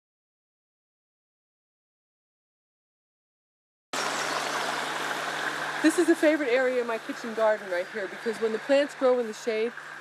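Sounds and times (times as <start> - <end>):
outdoor background hiss: 4.0 - 10.0.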